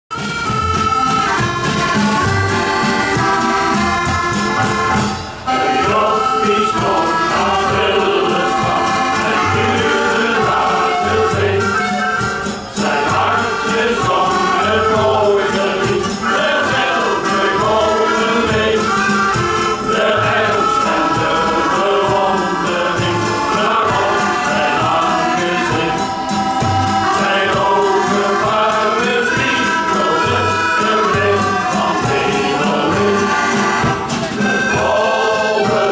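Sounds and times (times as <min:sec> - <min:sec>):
accordions: 0:00.1 - 0:35.9
men's choir singing: 0:02.2 - 0:35.9.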